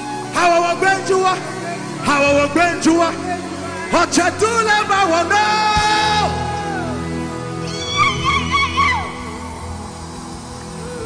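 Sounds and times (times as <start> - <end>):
bass: 0.0 - 11.0.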